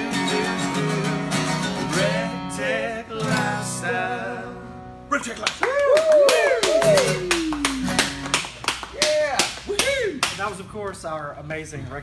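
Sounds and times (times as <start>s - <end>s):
people clapping: 5.3s - 10.5s
people whooping and cheering: 5.6s - 8.0s, 8.9s - 10.2s.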